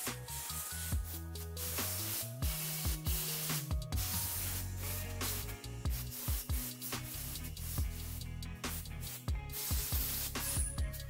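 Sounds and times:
music with kick drum and bass: 0.0 - 11.0
spray gun hissing: 0.0 - 11.0.

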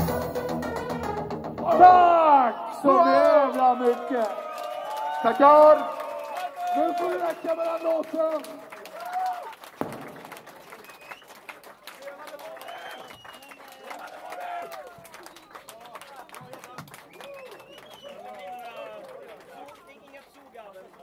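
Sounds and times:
hand clapping: 6.2 - 21.0.

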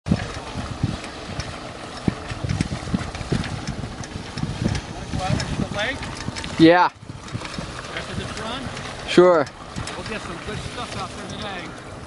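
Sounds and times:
water noise: 0.0 - 12.0
wind buffeting microphone: 0.0 - 12.0
low thumps: 0.1 - 11.5.

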